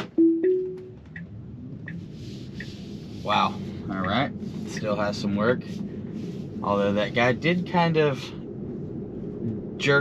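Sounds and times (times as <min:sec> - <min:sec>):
turn signal ticking: 0:00.0 - 0:03.0, 0:03.8 - 0:06.2
road and tyre hum: 0:00.0 - 0:10.0.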